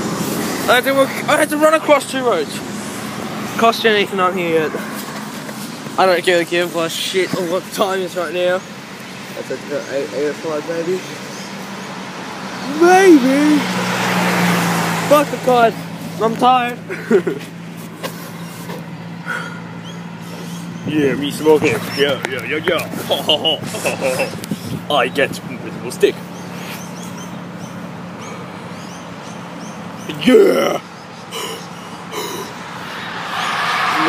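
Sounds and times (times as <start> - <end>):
vehicle engine humming: 0.0 - 34.0.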